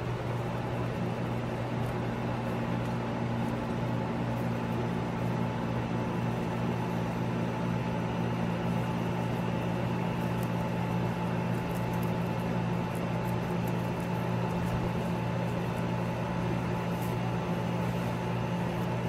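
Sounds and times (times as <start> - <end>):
low mechanical hum: 0.0 - 19.0.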